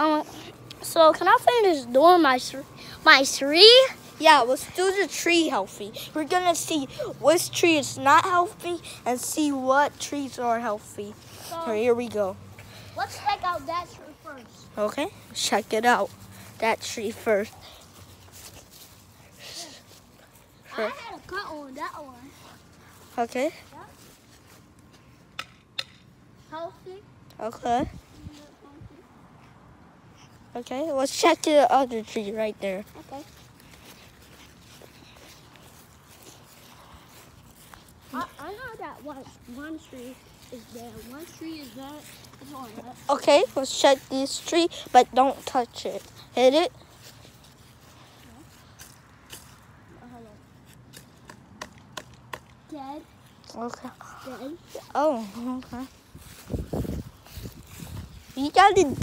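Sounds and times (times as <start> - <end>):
stick tapping tree trunk: 25.3 - 26.1, 50.8 - 52.6.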